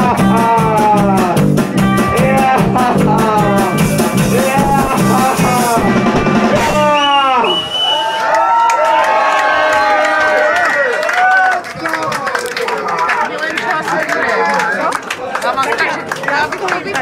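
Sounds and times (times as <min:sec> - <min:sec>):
punk band playing: 0:00.0 - 0:07.8
crowd shouting and cheering: 0:00.0 - 0:17.0
sliding guitar note: 0:01.7 - 0:07.0.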